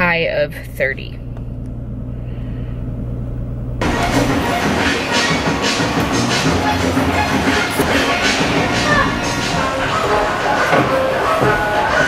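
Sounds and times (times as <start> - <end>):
car engine idling: 0.0 - 12.0
loud music: 3.8 - 12.0.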